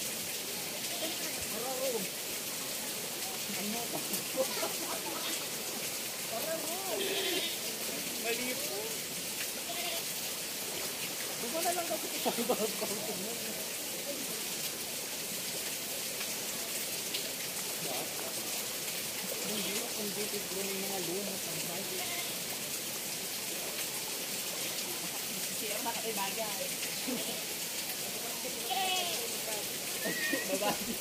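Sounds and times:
running water: 0.0s - 31.0s.

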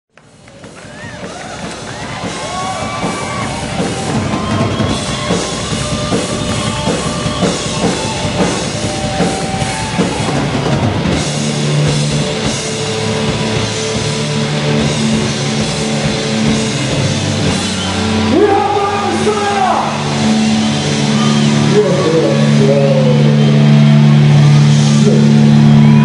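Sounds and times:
heavy rock band playing: 0.3s - 26.0s.

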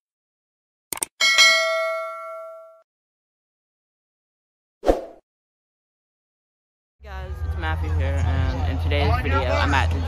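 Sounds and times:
notification bell ding: 1.2s - 2.8s.

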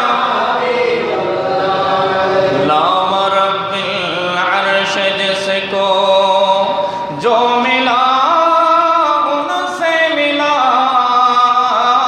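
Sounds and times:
man chanting: 2.5s - 12.0s.

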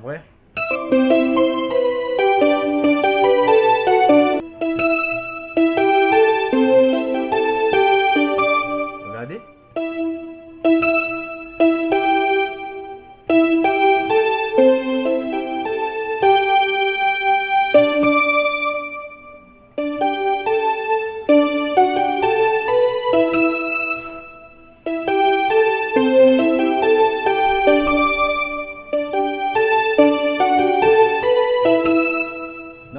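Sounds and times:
keyboard piano melody: 0.0s - 32.9s.

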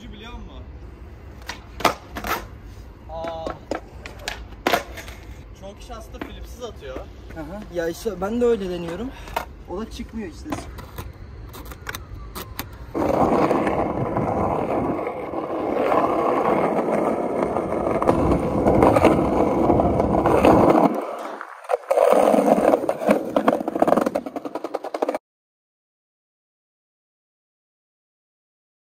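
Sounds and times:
skateboard wheels rolling on concrete: 0.0s - 25.2s
skateboard scrapes and clacks: 3.2s - 5.4s, 13.0s - 25.2s.

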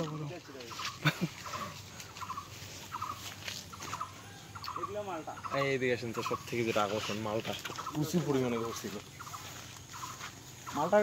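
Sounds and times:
bird rattling calls: 0.0s - 11.0s.

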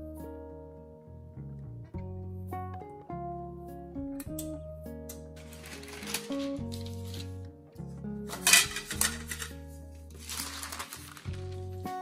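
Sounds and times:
background music: 0.0s - 12.0s
parchment paper handled: 5.4s - 7.4s, 8.3s - 12.0s
metal cake pan clinking: 8.3s - 9.6s.

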